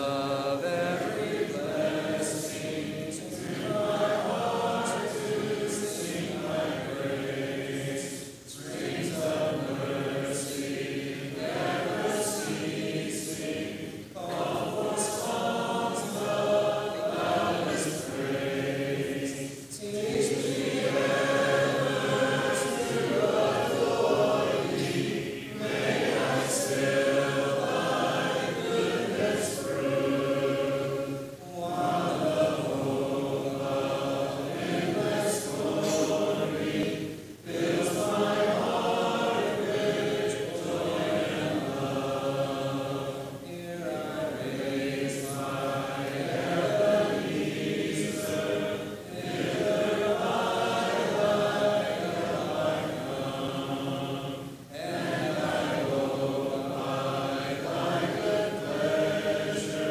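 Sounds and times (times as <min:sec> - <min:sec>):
congregation singing a hymn: 0:00.0 - 0:59.9.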